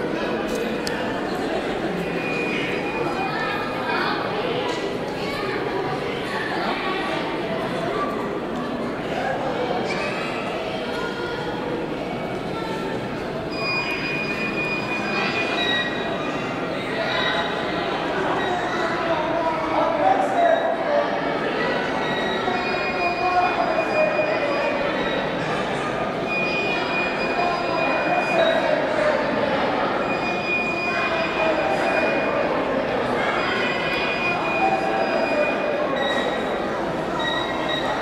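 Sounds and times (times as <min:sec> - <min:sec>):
hubbub of a large hall: 0:00.0 - 0:38.0
large crowd talking: 0:00.0 - 0:38.0.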